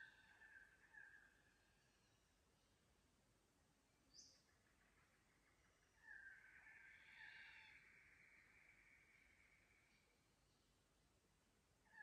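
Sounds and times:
faint drawn-out animal call: 0.0s - 1.8s, 4.8s - 10.1s.

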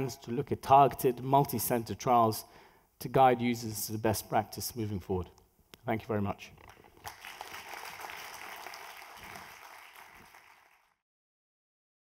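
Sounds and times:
audience applause: 7.0s - 11.0s.

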